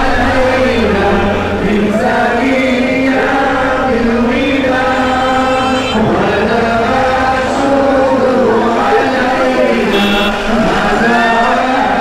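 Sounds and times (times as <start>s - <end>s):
men singing devotional chant: 0.0s - 12.0s.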